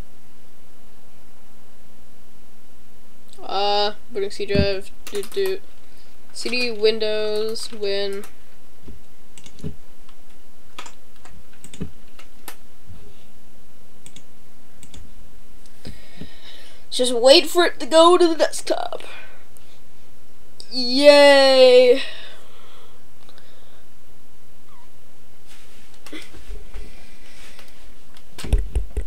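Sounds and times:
steady background hiss: 0:00.0 - 0:29.0
soft rush of noise: 0:25.2 - 0:28.4.

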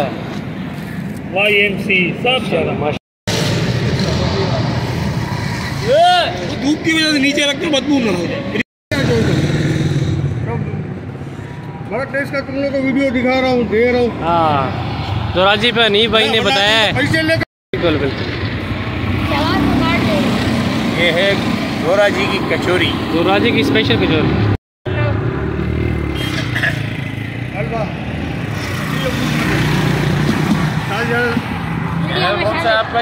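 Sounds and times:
road traffic rumble: 0:00.0 - 0:33.0.

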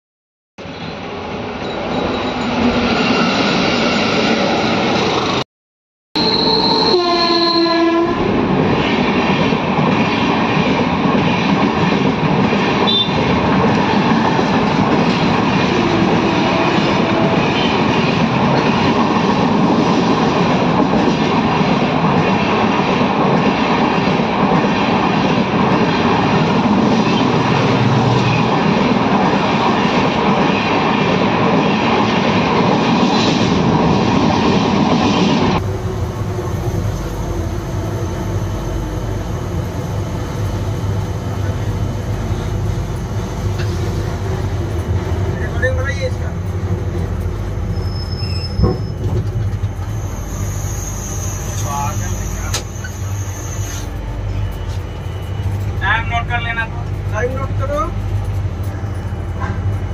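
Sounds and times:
train horn: 0:06.2 - 0:08.4, 0:12.8 - 0:13.3, 0:15.7 - 0:17.7
train wheels clattering on rails: 0:42.9 - 0:50.1.

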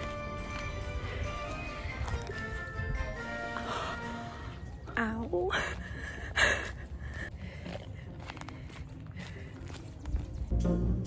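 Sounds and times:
running footfalls: 0:05.5 - 0:10.5.

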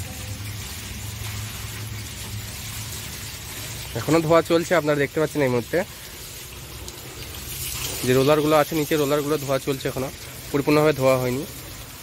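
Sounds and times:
water jet spraying on metal: 0:00.0 - 0:12.0.

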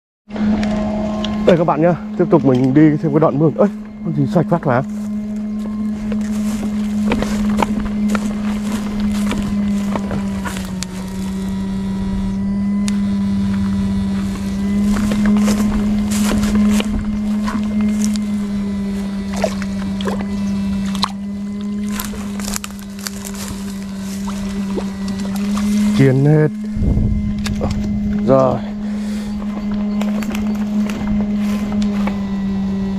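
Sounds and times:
electrofishing unit humming: 0:00.3 - 0:32.9.

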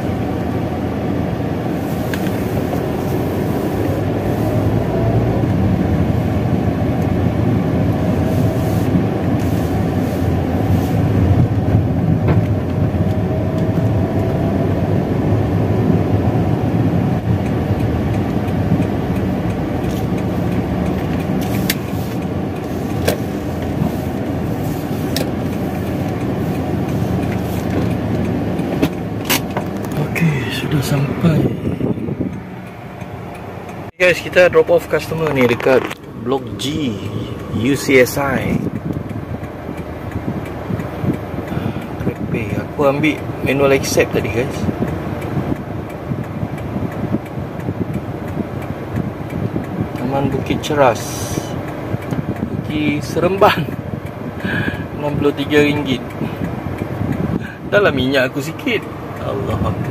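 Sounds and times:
car engine and road noise: 0:00.0 - 0:59.9.

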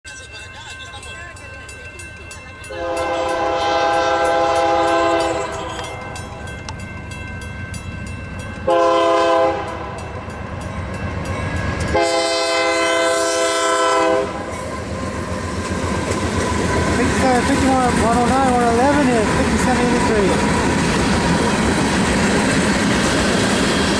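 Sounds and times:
crossing bell ticking: 0:00.0 - 0:12.1, 0:14.3 - 0:23.4
locomotive rumble: 0:00.1 - 0:23.9
locomotive air horn blasts: 0:02.7 - 0:05.9, 0:08.7 - 0:09.9, 0:11.9 - 0:14.5.

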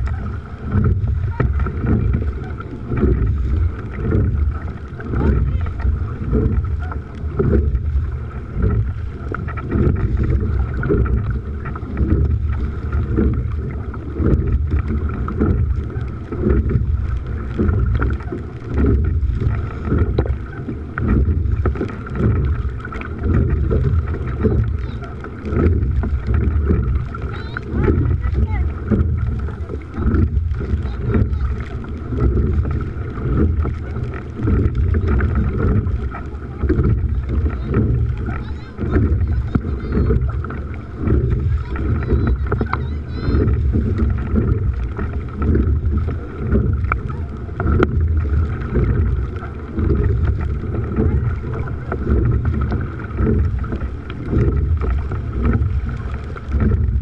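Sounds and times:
water rushing past boat hull: 0:00.0 - 0:57.0
wind buffeting microphone: 0:00.0 - 0:57.0.

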